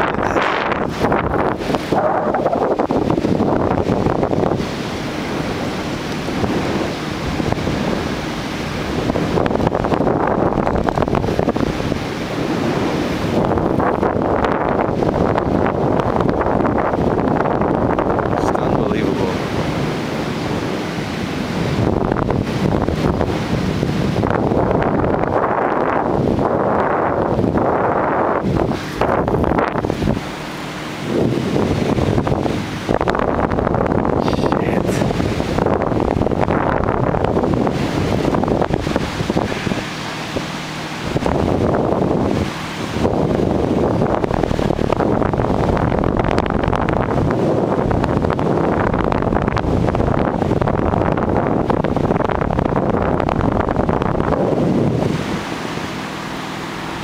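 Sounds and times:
wind rushing over microphone: 0.0s - 57.0s.

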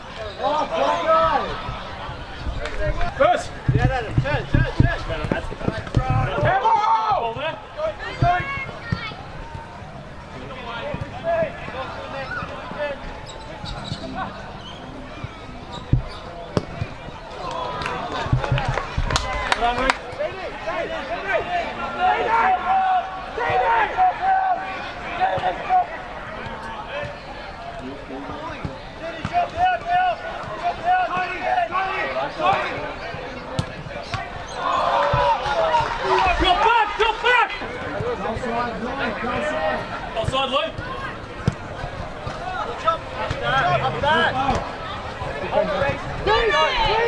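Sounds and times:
distant shouts of players: 6.0s - 47.0s.

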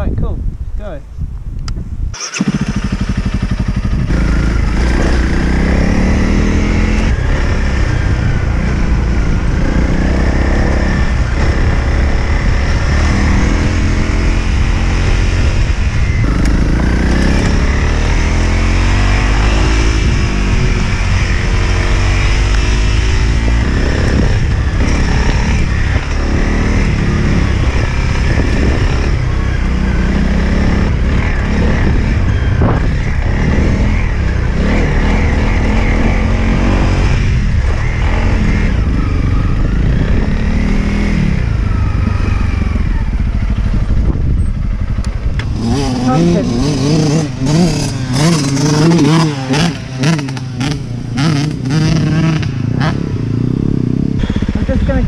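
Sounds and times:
wind rumble on microphone: 0.0s - 55.0s
motorcycle engine revving: 2.1s - 55.0s.

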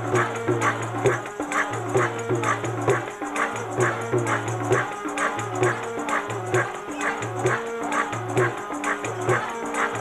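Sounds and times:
percussion beat: 0.0s - 10.0s
woman singing into microphone: 5.6s - 10.0s.

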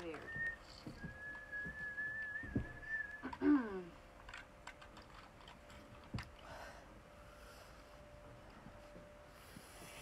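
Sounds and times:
person whistling a long note: 0.2s - 3.6s.

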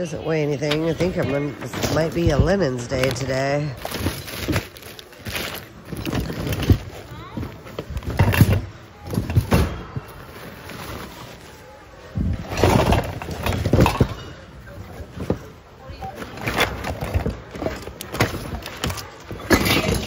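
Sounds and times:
objects knocking and clattering: 0.6s - 11.4s, 12.1s - 20.0s.

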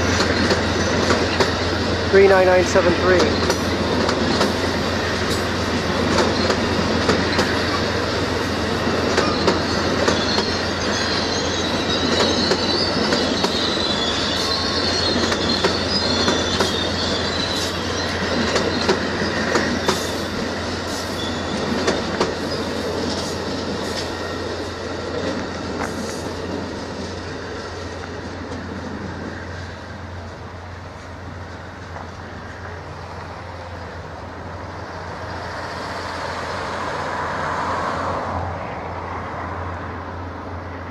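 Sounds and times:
wheels clicking over rail joints: 0.0s - 11.0s, 14.4s - 29.3s
high wheel squeal: 0.0s - 26.4s
train cars rolling on rails: 0.0s - 40.9s.

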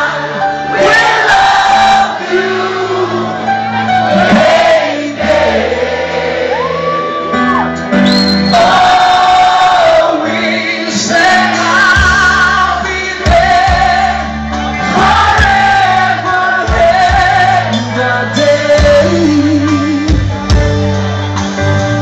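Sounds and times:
drums: 3.9s - 5.4s, 7.4s - 22.0s
man singing into microphone: 8.5s - 20.5s.

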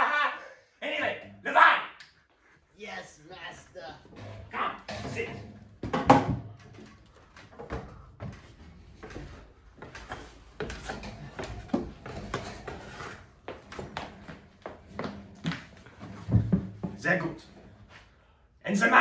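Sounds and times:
knocks and bumps of handling: 5.8s - 17.0s.

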